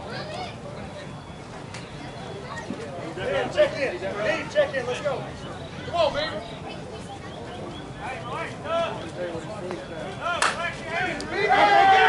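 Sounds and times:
players calling out: 3.2 - 12.0.

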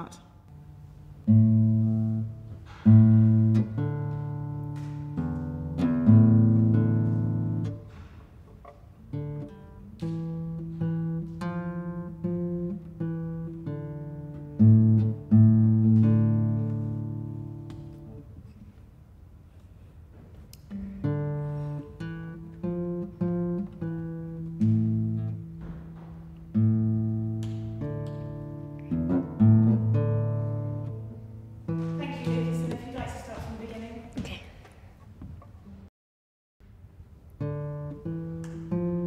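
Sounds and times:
classical guitar played slowly: 0.5 - 19.6, 20.4 - 32.8, 37.1 - 39.0.

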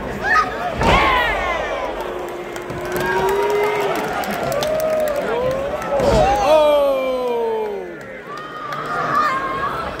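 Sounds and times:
crowd shouting: 0.2 - 7.9.

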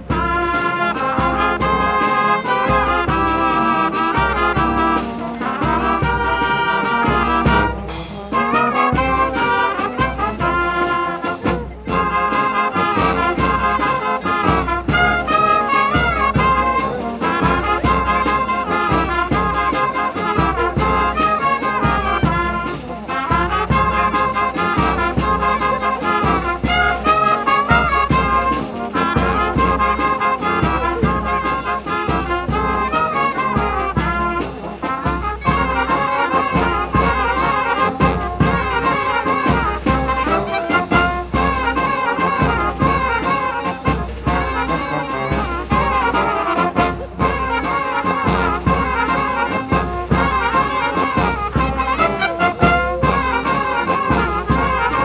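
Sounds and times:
wind band playing: 0.0 - 55.0
bass drum beat: 51.5 - 53.4.

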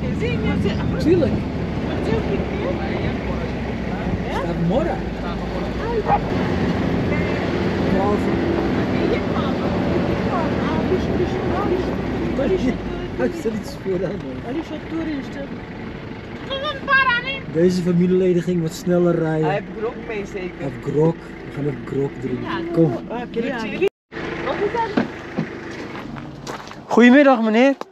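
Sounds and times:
people chatting: 0.0 - 6.3, 7.0 - 15.5, 16.5 - 23.9, 24.5 - 25.1
minibus engine and road rumble: 0.0 - 27.9.

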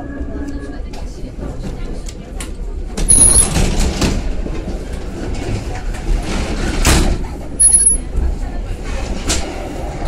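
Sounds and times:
train wheels rumbling on rails: 0.6 - 10.0.

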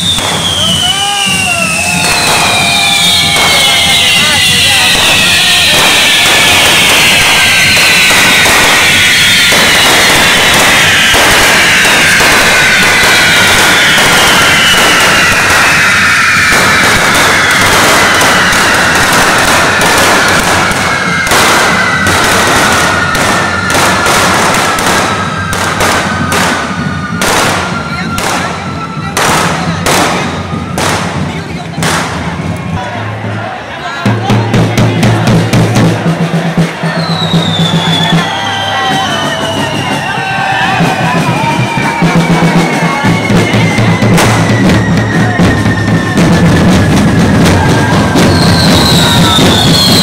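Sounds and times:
firework fountains hissing: 0.0 - 32.4, 36.8 - 50.0
falling firework whistles: 0.0 - 32.5, 35.1 - 50.0
firecracker bangs: 0.0 - 50.0.

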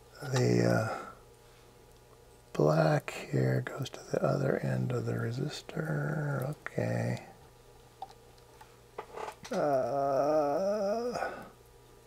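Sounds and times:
man humming low note: 9.5 - 11.6.

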